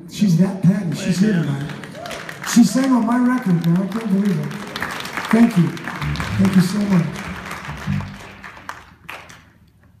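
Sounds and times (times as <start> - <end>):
audience applause: 1.4 - 9.5.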